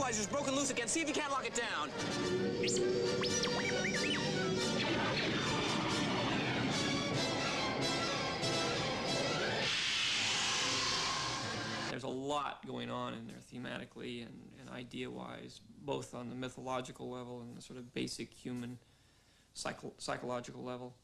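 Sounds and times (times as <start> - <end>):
orchestral film score: 0.0 - 9.6
starfighter sound effects: 1.9 - 11.9
droid electronic whistles: 2.2 - 5.5, 9.1 - 11.9
explosion: 9.3 - 11.9.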